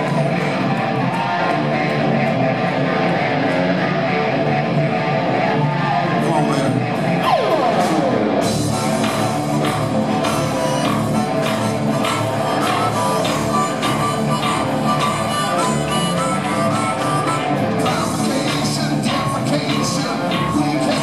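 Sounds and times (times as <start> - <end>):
electric guitar: 0.0 - 21.0
harmonica: 7.2 - 21.0
drums and cymbals: 7.5 - 15.7.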